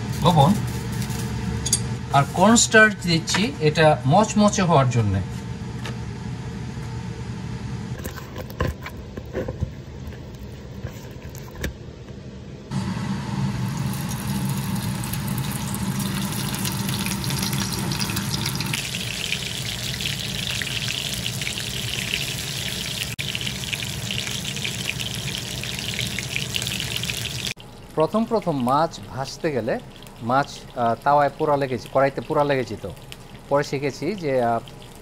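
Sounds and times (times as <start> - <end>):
fish sizzling in hot oil: 12.8 - 27.9.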